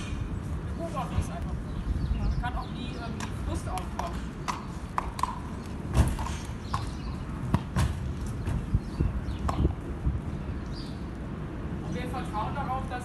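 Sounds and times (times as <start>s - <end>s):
horse hooves on loading ramp: 5.2s - 6.9s.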